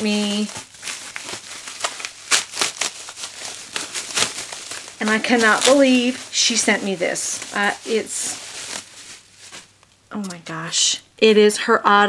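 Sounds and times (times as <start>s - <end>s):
packaging crinkling: 0.0s - 10.4s.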